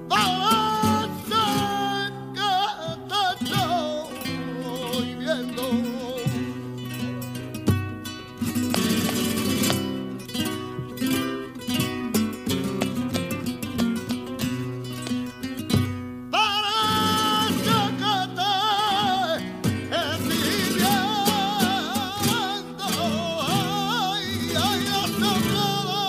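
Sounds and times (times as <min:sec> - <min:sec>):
man singing ornamented line: 0:00.0 - 0:06.5, 0:16.3 - 0:26.0
acoustic guitars strummed: 0:00.0 - 0:26.0
rhythmic hand-clapping: 0:08.4 - 0:10.2, 0:12.5 - 0:13.4, 0:14.9 - 0:15.3.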